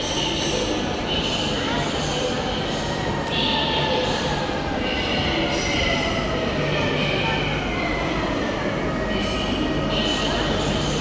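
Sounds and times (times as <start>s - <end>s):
train rail rumble echoing: 0.0s - 11.0s.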